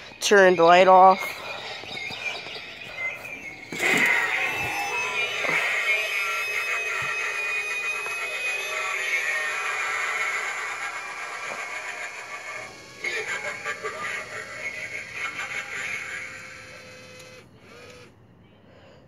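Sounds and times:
spooky music from small speaker: 1.2 - 17.0.

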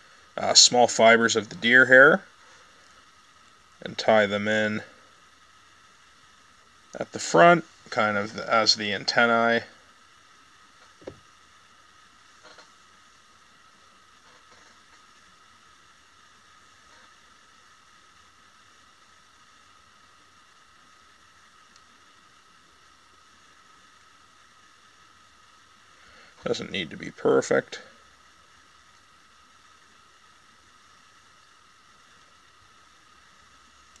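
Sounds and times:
faint steady hiss: 0.0 - 34.0
thin high whine: 0.0 - 34.0.

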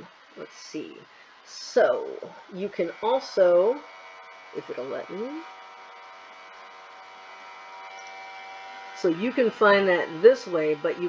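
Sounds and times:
electrical hum and hiss: 0.0 - 11.0
thin steady tones: 0.0 - 11.0.

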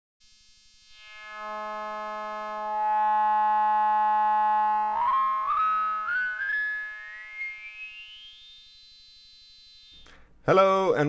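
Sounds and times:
buzzy synthesizer drone: 0.3 - 10.0.

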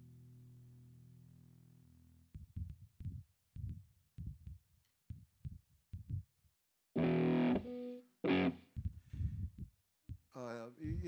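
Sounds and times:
distorted electric guitar strum: 7.0 - 8.6
low plucked guitar notes: 7.0 - 8.6.

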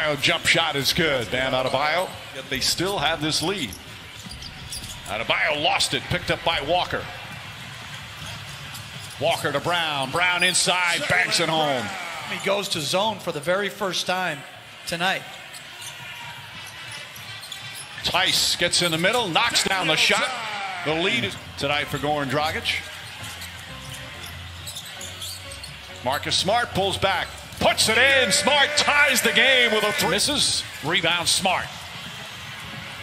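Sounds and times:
arena noise: 0.0 - 33.0
low background music: 18.2 - 33.0.

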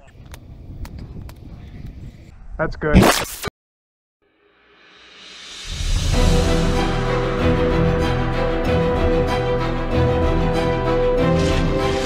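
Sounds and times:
wind rumble on microphone: 0.0 - 2.6.

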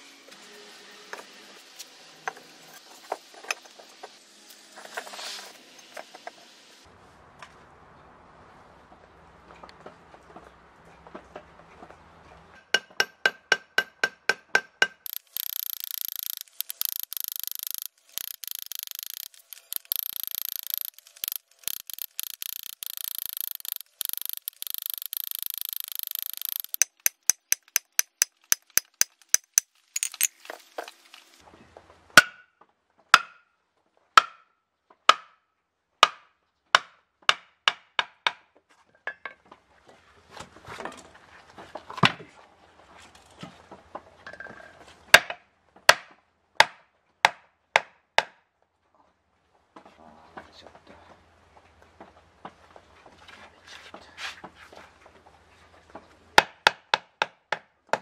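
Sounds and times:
hammer striking chisel on concrete: 12.6 - 30.3, 33.2 - 33.4.

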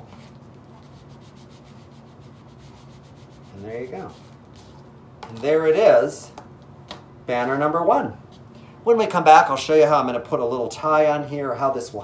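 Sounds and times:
ruler rubbing on paper: 0.0 - 4.8
low steady hum: 0.0 - 12.0.

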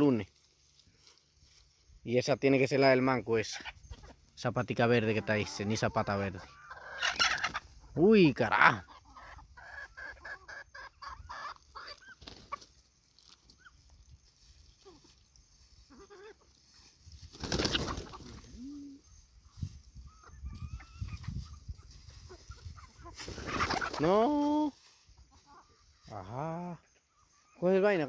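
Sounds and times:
chickens clucking: 0.0 - 28.0.

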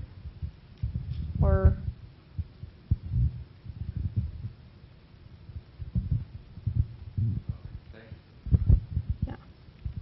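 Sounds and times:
dull low thumps and rumbles: 0.0 - 4.8, 5.4 - 10.0.

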